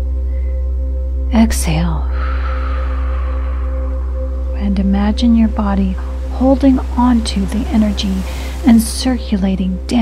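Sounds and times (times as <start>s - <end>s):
ambient music drone: 0.0s - 10.0s.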